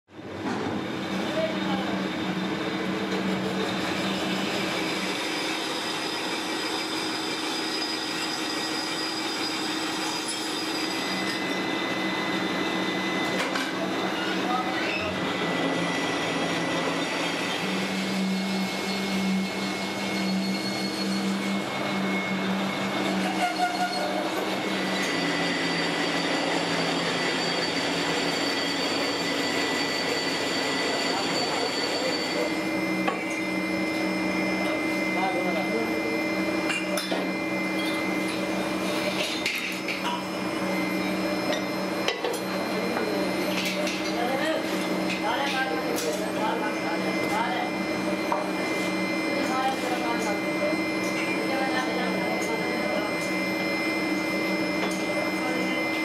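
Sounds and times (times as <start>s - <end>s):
high machine whines: 0.1s - 56.0s.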